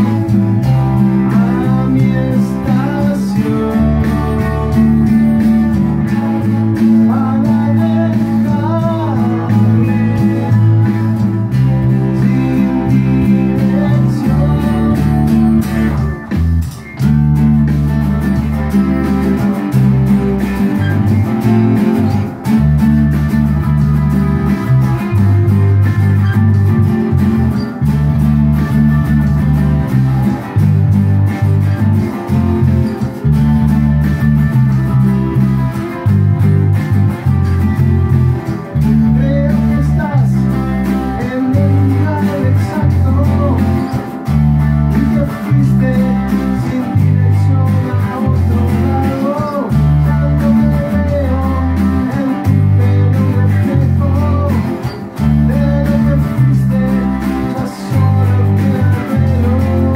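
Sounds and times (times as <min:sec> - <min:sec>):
electric bass line: 0:00.0 - 0:59.9
electric guitars playing: 0:00.0 - 0:59.9
guitar lead with bent notes: 0:00.0 - 0:59.9.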